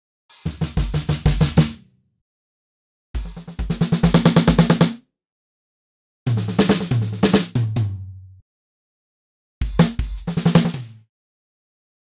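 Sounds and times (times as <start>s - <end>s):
drum kit fill: 0.3s - 1.8s, 3.2s - 5.0s, 6.3s - 8.2s, 9.6s - 11.0s.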